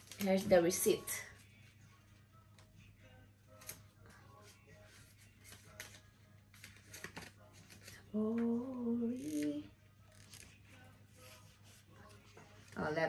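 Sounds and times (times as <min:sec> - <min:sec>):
paper rustling: 0:03.6 - 0:08.1.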